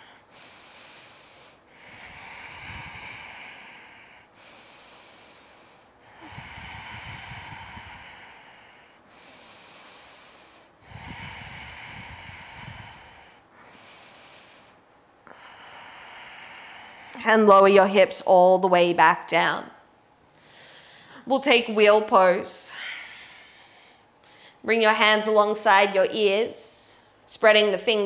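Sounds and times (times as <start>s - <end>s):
woman breathing slowly: 0.0s - 18.0s, 20.3s - 21.3s, 22.6s - 24.7s.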